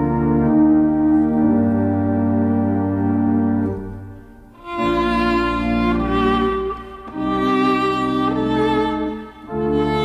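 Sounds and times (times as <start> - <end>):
church organ: 0.0 - 10.0
violin sustained notes: 4.5 - 10.0.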